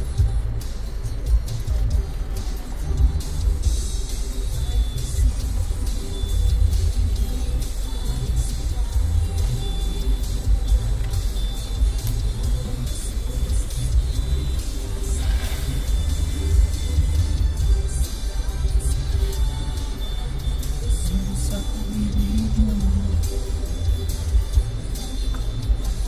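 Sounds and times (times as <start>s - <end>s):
car engine rumble: 0.0s - 26.0s
music playing in a car: 0.0s - 26.0s.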